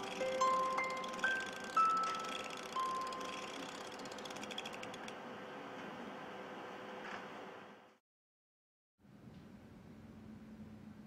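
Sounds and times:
small mechanism clicking: 0.0 - 5.2.

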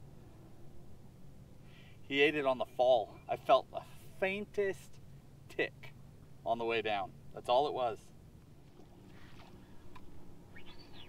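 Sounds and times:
low outdoor rumble: 0.0 - 11.0
faint bird call: 10.5 - 11.0.

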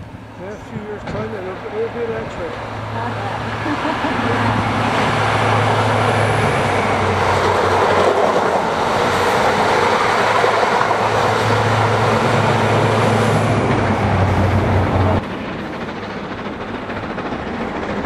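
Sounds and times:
diesel train engine: 0.0 - 18.0
rushing wheel and rail noise: 0.0 - 18.0.

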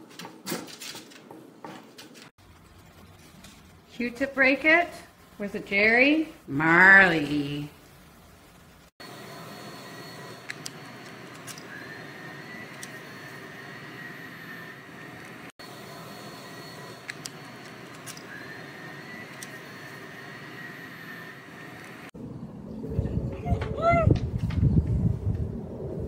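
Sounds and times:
steady whirring with high whine: 8.8 - 26.0.

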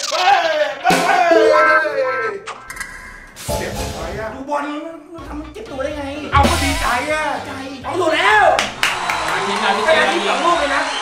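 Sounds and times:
men shouting: 0.1 - 2.4
hands clapping: 8.5 - 11.0.

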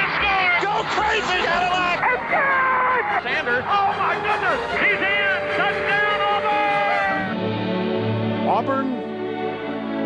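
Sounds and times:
sportscaster shouting excitedly: 0.0 - 7.4.

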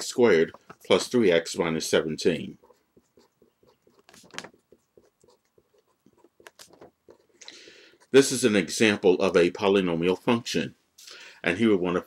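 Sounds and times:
pen scratching on paper: 0.0 - 9.4.

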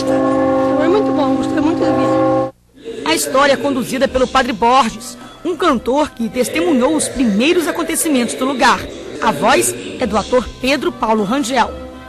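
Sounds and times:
church bells ringing: 0.0 - 2.5
woman's voice: 0.8 - 2.2, 3.1 - 11.7.

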